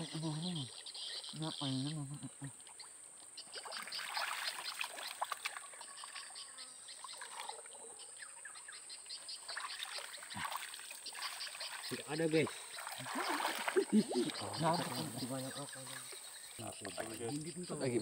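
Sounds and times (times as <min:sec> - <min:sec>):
small wet splashes: 0:02.5 - 0:06.2, 0:07.0 - 0:07.8, 0:09.4 - 0:15.2
muddy water sloshing: 0:02.5 - 0:06.3, 0:09.4 - 0:17.6.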